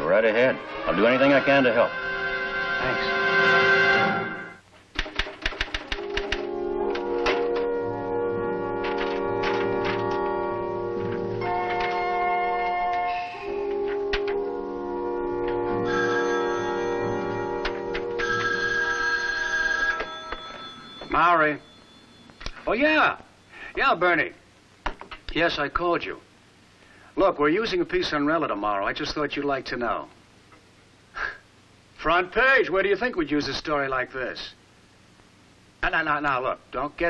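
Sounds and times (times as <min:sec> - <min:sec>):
music chord: 0:00.0 - 0:04.6, 0:06.2 - 0:18.6
typewriter keys clacking: 0:05.0 - 0:07.4, 0:08.8 - 0:10.3
telephone bell ringing: 0:15.8 - 0:22.4.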